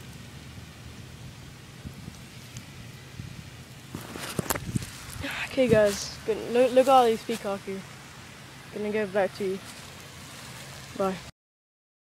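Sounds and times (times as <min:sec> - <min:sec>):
outdoor background hiss: 0:00.0 - 0:11.3.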